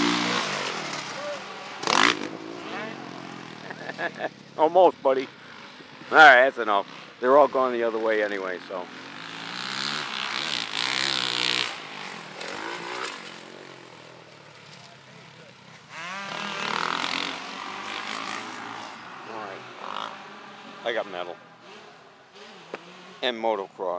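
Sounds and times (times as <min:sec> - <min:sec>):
dirt bike engines revving: 0:00.0 - 0:23.9.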